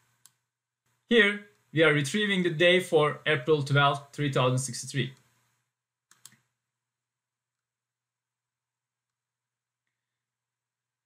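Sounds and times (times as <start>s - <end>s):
computer mouse clicking: 0.0s - 0.4s, 6.1s - 6.5s.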